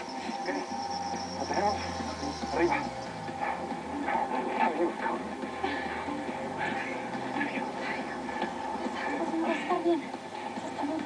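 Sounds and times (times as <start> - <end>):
faint steady hum: 0.0 - 11.0
indistinct voices: 0.0 - 11.0.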